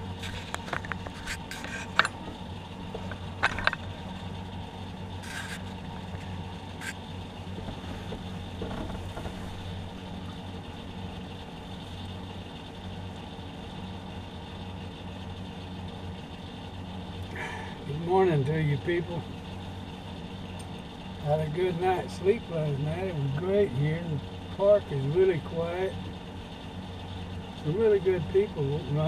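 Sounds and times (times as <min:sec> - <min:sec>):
low engine hum: 0:00.0 - 0:29.0.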